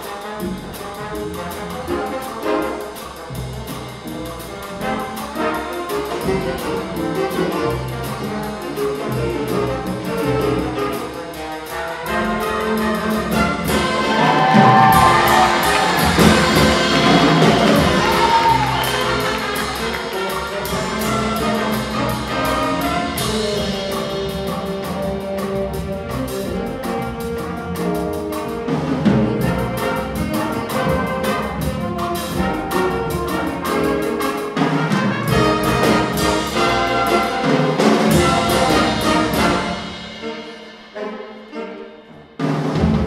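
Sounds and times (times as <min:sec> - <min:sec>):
drum cymbals beat: 0:00.0 - 0:43.0
jazz ensemble playing: 0:00.0 - 0:43.0
choir singing held notes: 0:13.7 - 0:20.9.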